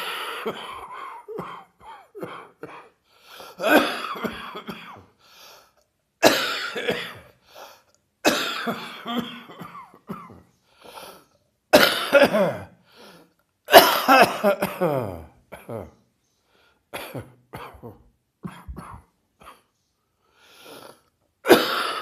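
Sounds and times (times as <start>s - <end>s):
person coughing hard: 0.0s - 5.1s, 6.2s - 7.3s, 8.2s - 10.5s, 11.7s - 12.8s, 13.7s - 16.0s, 17.0s - 19.7s, 21.4s - 22.0s.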